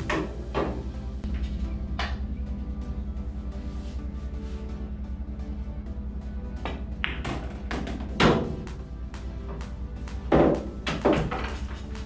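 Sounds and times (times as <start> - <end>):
billiard balls clacking: 0.0 - 2.2, 6.6 - 8.7
background music with steady beat: 0.0 - 12.0.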